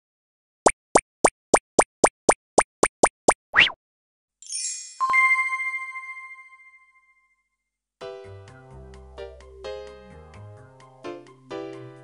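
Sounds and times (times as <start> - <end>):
cartoon plops: 0.6 - 3.8.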